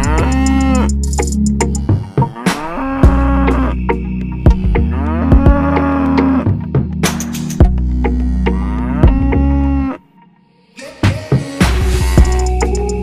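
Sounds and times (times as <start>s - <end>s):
cow mooing: 0.0s - 0.9s, 1.7s - 3.8s, 4.5s - 6.5s, 7.8s - 10.0s
background music with steady beat: 0.0s - 9.4s, 10.8s - 13.0s.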